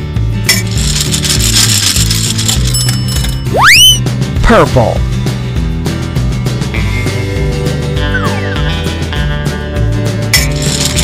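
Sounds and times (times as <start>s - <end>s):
background music: 0.0s - 11.0s
gumballs rattling in machine: 0.5s - 3.4s, 10.4s - 11.0s.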